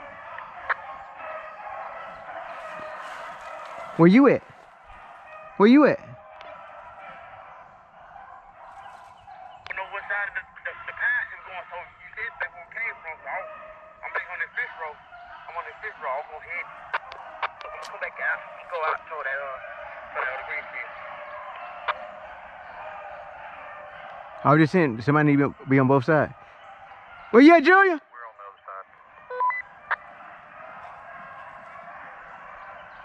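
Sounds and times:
pack of dogs baying: 0.0s - 33.0s.

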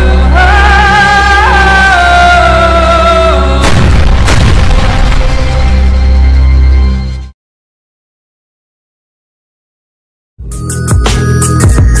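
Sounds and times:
heavy boom hits: 3.6s - 6.1s.

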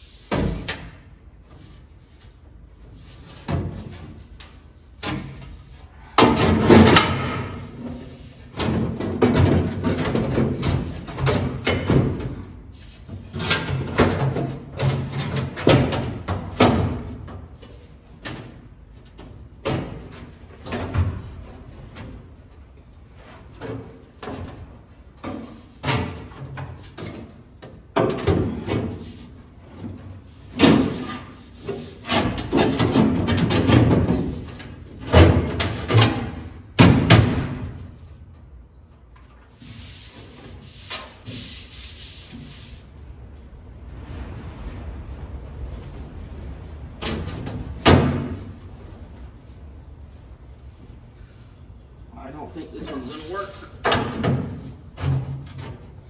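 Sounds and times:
sheet metal clunking and scraping: 2.3s - 41.6s, 52.8s - 56.0s.

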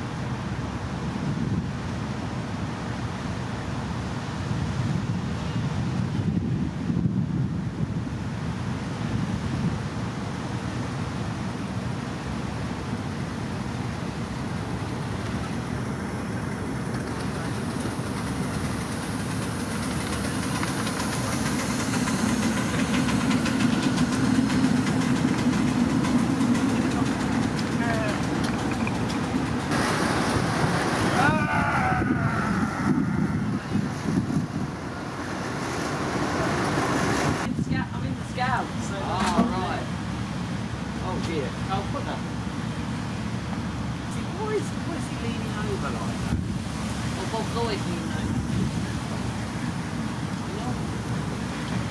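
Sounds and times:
train wheels rumbling on rails: 14.4s - 37.6s.

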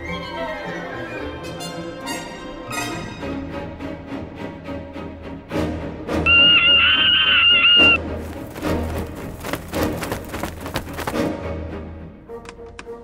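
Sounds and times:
high wavering whistle-like tone: 6.3s - 8.0s.

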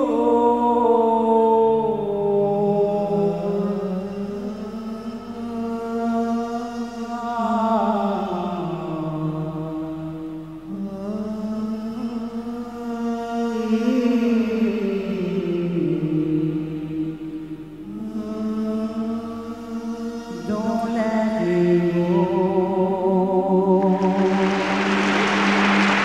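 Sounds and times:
man singing into a microphone: 0.0s - 17.2s, 17.8s - 24.9s.

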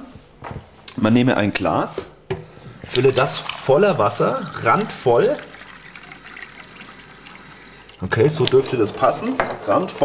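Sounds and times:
tap water running into a glass: 2.7s - 10.0s.

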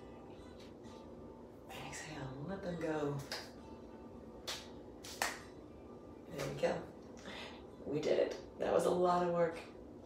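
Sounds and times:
hands clapping: 3.2s - 3.6s, 4.4s - 5.5s.

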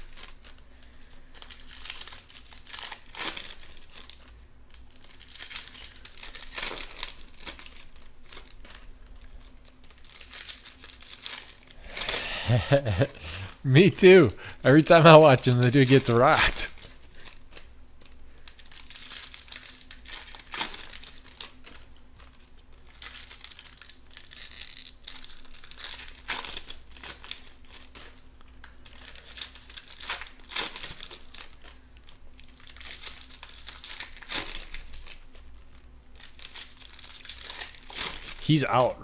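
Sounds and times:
foil wrappers crinkling and tearing: 0.0s - 39.0s.

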